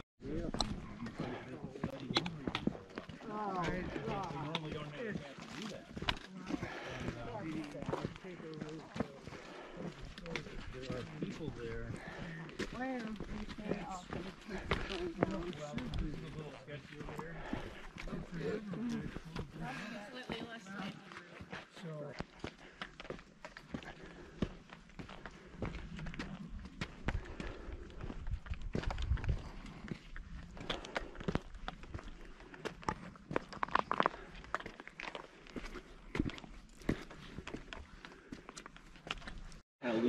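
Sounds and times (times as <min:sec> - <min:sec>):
footsteps on stone: 0:00.4 - 0:39.6.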